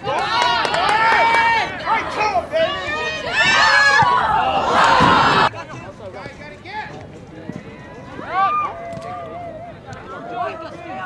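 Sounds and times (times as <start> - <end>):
loud shout: 0.0 - 5.5, 8.2 - 11.0.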